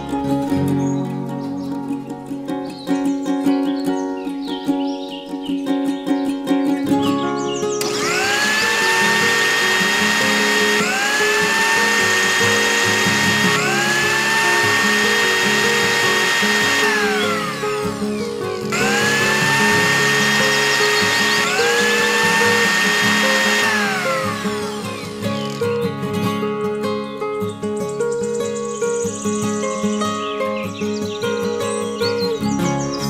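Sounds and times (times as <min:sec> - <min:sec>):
small electric motor whirring: 0:07.8 - 0:25.9.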